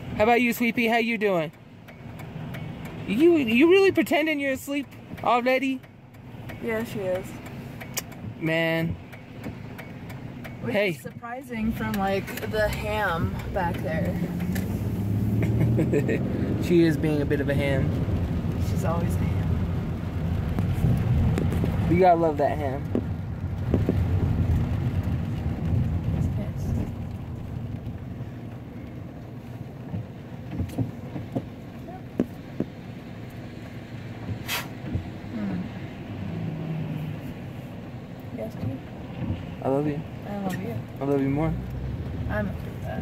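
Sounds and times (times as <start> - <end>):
car engine and road noise: 0.0 - 43.0
short sharp hiss: 34.4 - 34.8.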